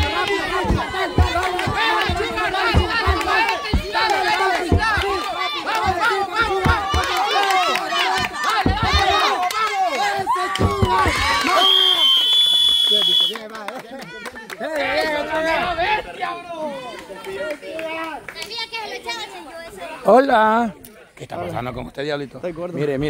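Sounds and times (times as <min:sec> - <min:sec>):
low thumps: 0:00.0 - 0:07.3, 0:08.1 - 0:09.4, 0:10.6 - 0:11.4
crowd shouting and cheering: 0:00.0 - 0:13.1
referee's whistle blast: 0:11.5 - 0:13.4.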